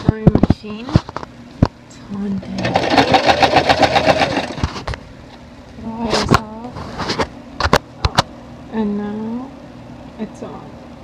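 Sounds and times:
electric sewing machine stitching: 0:02.5 - 0:04.7.

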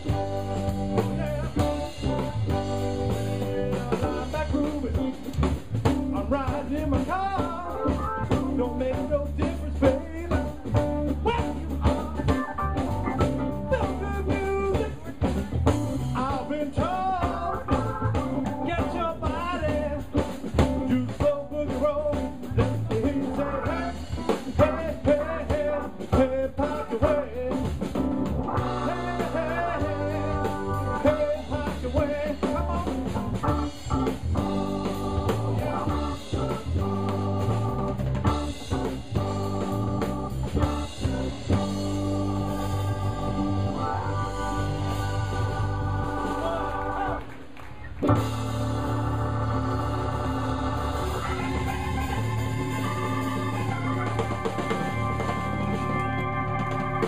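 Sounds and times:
electric bass: 0:00.0 - 0:47.3, 0:47.9 - 0:57.0
drum kit: 0:00.0 - 0:57.0
guitar: 0:00.0 - 0:57.0
keyboard: 0:00.0 - 0:57.0.

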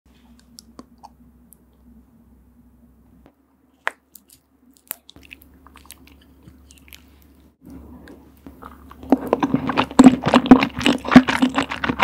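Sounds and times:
low steady hum: 0:00.1 - 0:12.0.

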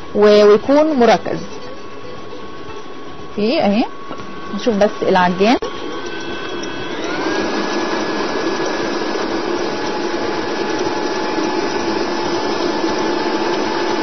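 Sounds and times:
stand mixer motor whining: 0:00.0 - 0:14.0.

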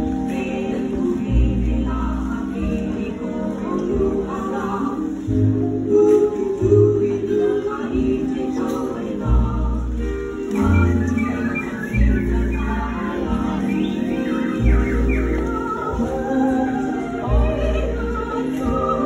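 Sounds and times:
voices singing together: 0:00.0 - 0:19.0.

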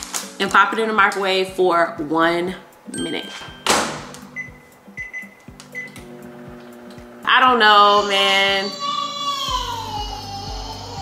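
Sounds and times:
background music: 0:00.0 - 0:11.0
microwave keypad beeping: 0:03.0 - 0:06.1
microwave oven humming: 0:05.8 - 0:07.6.

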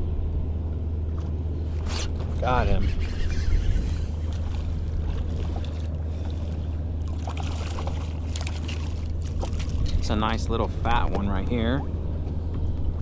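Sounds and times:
steady low hum: 0:00.0 - 0:13.0
water noise: 0:00.0 - 0:13.0
wind: 0:00.0 - 0:13.0
faint splashes: 0:04.0 - 0:10.2.

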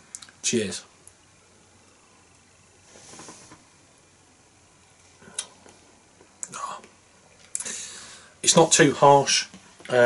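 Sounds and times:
soft breathy hiss: 0:00.0 - 0:10.0.

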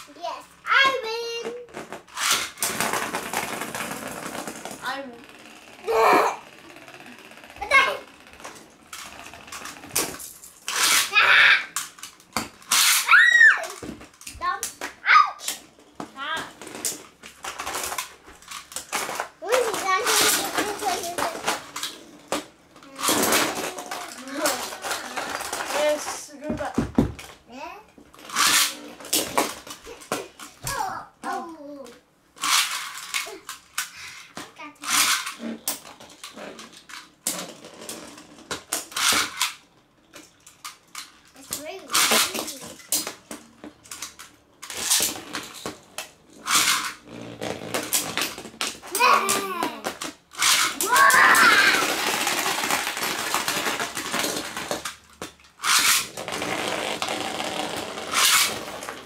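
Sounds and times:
spinning tops clattering in plastic tub: 0:02.0 - 0:26.7, 0:32.4 - 0:34.0, 0:34.6 - 0:59.0
children talking and exclaiming: 0:19.4 - 0:21.4, 0:30.6 - 0:32.0, 0:50.8 - 0:51.9.

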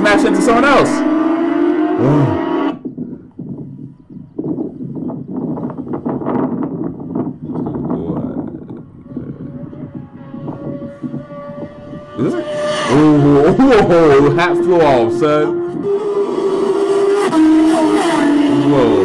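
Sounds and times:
motorcycle passing at high speed: 0:00.0 - 0:03.0, 0:08.9 - 0:19.0.

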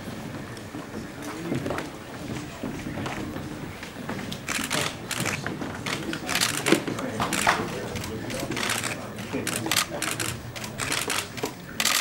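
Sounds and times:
camera shutter clicks: 0:08.6 - 0:12.0.

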